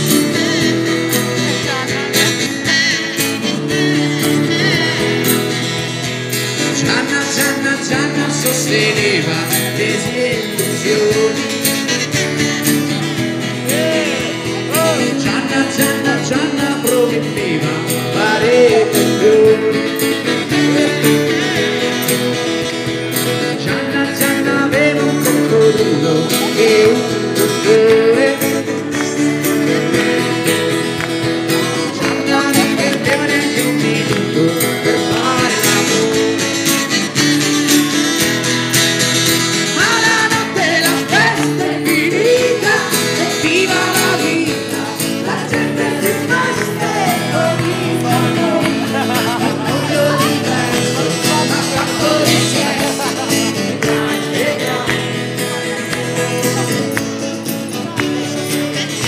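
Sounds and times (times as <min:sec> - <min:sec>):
man singing: 0:00.0 - 0:05.9, 0:06.5 - 0:38.6, 0:39.2 - 0:57.0, 0:57.6 - 0:59.0
strummed acoustic guitar: 0:00.0 - 0:59.0.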